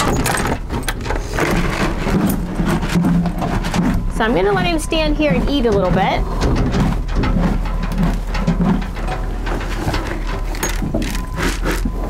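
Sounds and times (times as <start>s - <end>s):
clicks knocks and rattles: 0.0s - 12.0s
horse eating from bucket: 0.0s - 12.0s.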